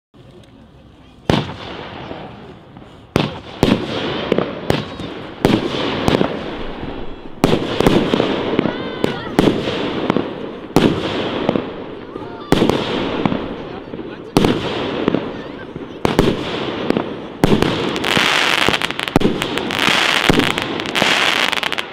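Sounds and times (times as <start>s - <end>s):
fireworks bangs: 1.2s - 21.9s.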